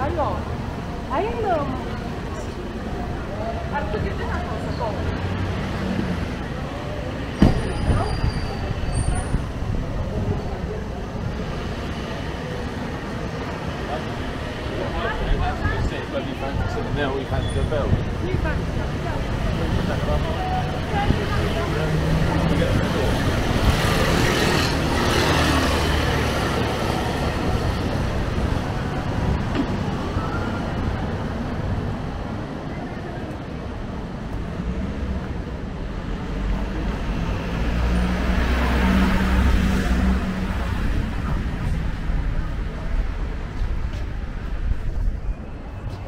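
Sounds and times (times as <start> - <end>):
cars passing: 0.0 - 46.0
passers-by talking: 0.0 - 46.0.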